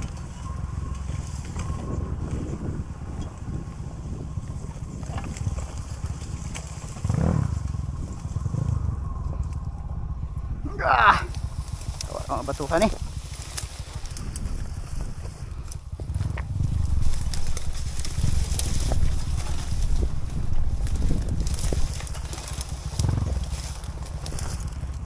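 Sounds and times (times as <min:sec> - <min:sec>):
dirt bike engine at low revs: 0:00.0 - 0:25.0.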